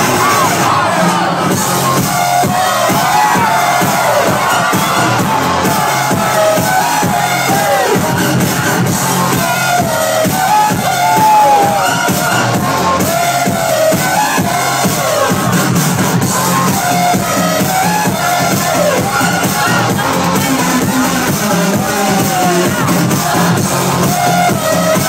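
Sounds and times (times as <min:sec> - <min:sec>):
loud electronic dance music: 0:00.0 - 0:25.0.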